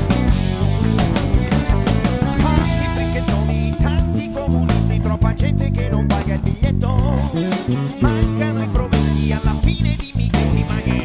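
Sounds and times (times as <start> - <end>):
drum hits: 0.0 - 10.6
electric bass: 0.0 - 11.0.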